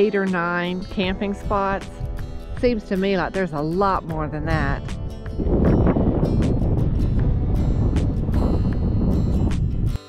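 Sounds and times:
background music: 0:00.0 - 0:10.0
wind buffeting microphone: 0:00.8 - 0:10.0.

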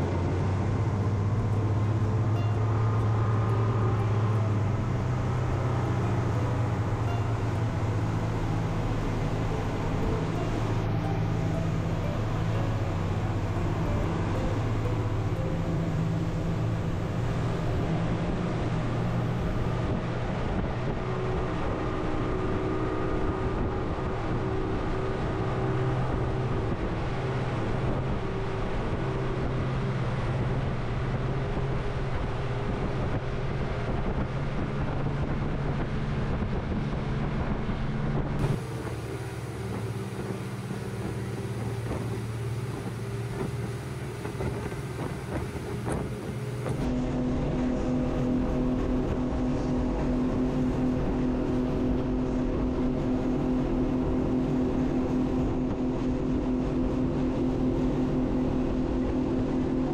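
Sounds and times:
motorboat engine drone: 0:00.0 - 0:59.9
wind noise: 0:04.5 - 0:59.9
water wash: 0:37.2 - 0:59.9.

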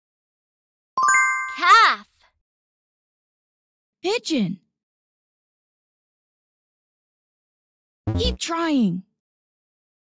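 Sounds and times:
bright game chime: 0:01.0 - 0:01.8.

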